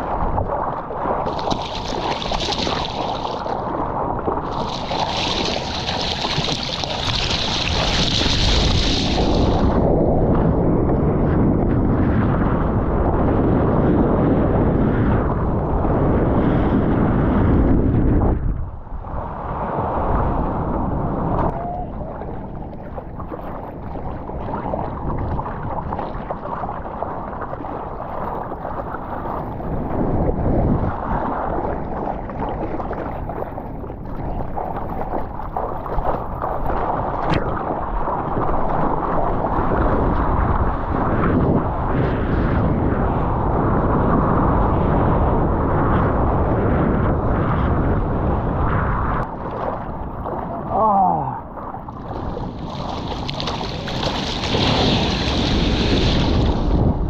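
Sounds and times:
water sloshing and splashing: 0:00.0 - 0:09.7, 0:31.4 - 0:39.9, 0:49.2 - 0:56.9
wind buffeting microphone: 0:00.0 - 0:57.0
arms stroking through water: 0:00.4 - 0:09.8, 0:49.3 - 0:56.8.

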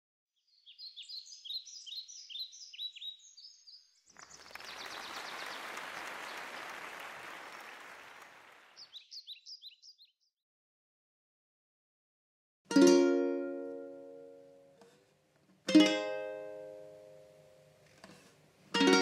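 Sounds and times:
birds chirping: 0:00.4 - 0:10.3.

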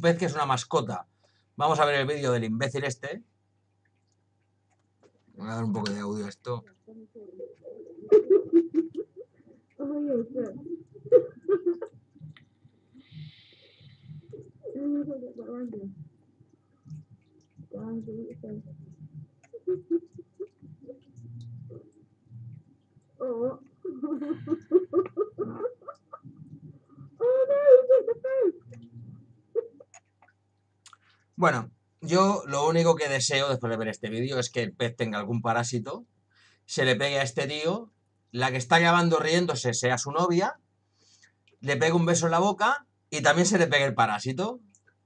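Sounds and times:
woman laughing: 0:07.9 - 0:09.3, 0:11.1 - 0:11.9, 0:23.3 - 0:26.1.

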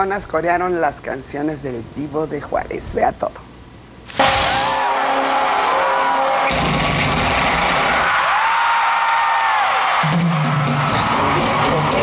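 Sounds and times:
crowd cheering: 0:04.1 - 0:12.0.

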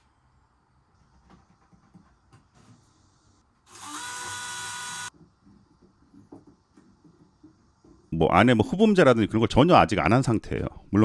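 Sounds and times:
cordless drill driving screw: 0:03.7 - 0:05.1.

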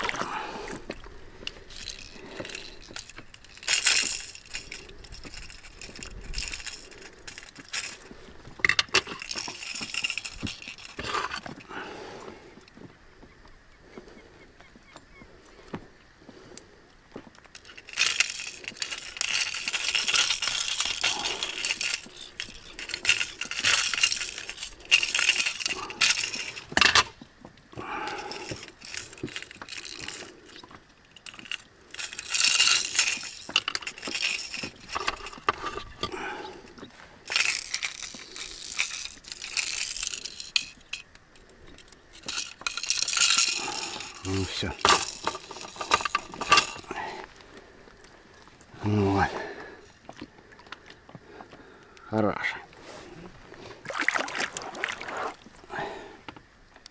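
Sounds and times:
metal tackle clinking and rattling: 0:00.0 - 0:11.8, 0:17.4 - 0:50.8.

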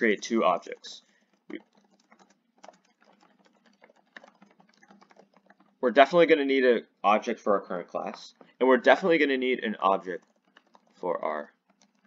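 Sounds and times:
keyboard typing clicks: 0:01.2 - 0:05.8, 0:10.0 - 0:12.0.

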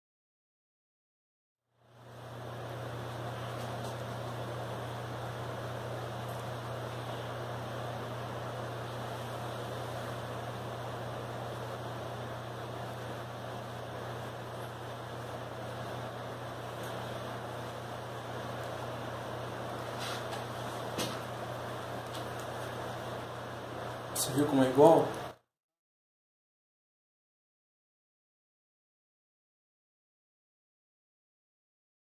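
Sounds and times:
low electrical hum: 0:01.7 - 0:25.4.

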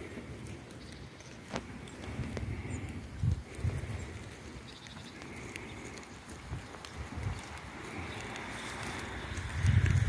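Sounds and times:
faint outdoor ambience: 0:00.0 - 0:10.0
footsteps through grass: 0:00.6 - 0:10.0.

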